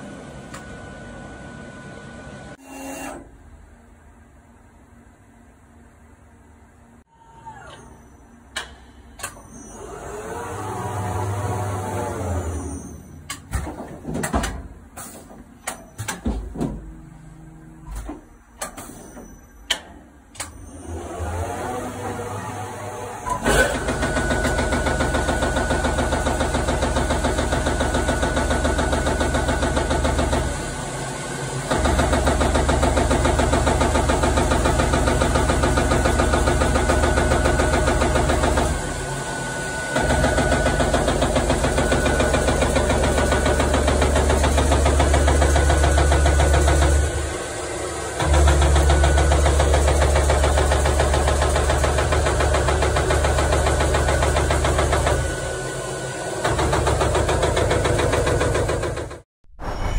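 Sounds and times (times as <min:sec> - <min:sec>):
punching machine pulsing drone: 0:20.3 - 0:59.9.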